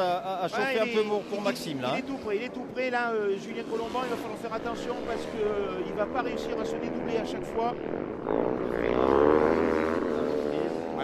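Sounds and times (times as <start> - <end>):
motocross motorcycle engines revving: 0.0 - 11.0.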